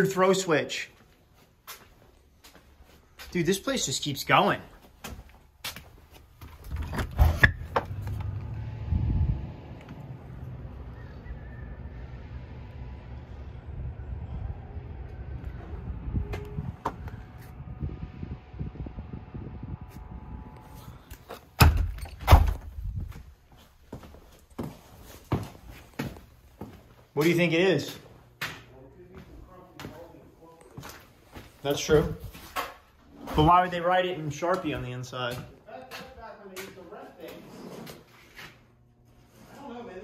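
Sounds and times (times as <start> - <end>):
low outdoor rumble: 6.5 - 21.2.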